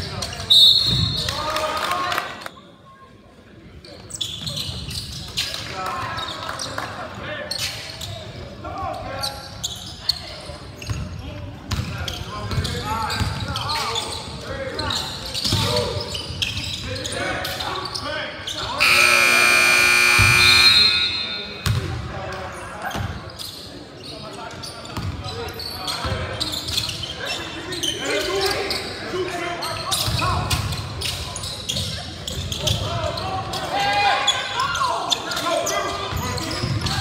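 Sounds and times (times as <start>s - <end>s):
voices echoing in a hall: 0.0s - 37.0s
loud steady horn: 18.8s - 21.6s.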